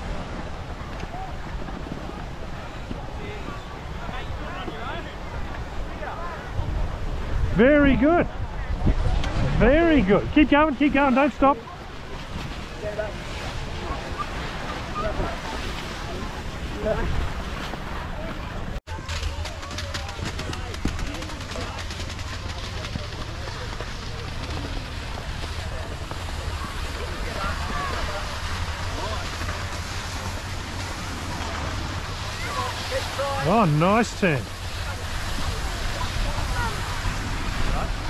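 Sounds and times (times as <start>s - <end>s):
wind buffeting microphone: 0.0s - 10.8s, 34.4s - 38.0s
skis sliding over snow: 10.6s - 38.0s.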